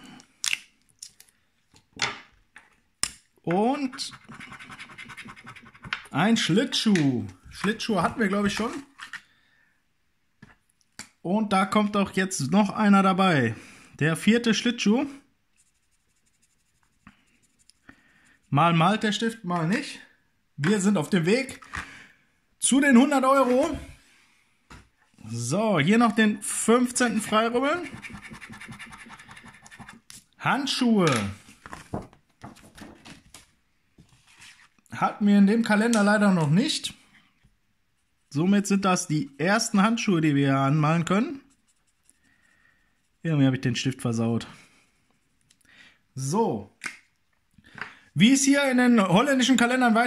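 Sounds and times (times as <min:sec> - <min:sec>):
coin scratching scratch-card coating: 0:03.9 - 0:06.0, 0:15.6 - 0:17.8, 0:27.0 - 0:30.2.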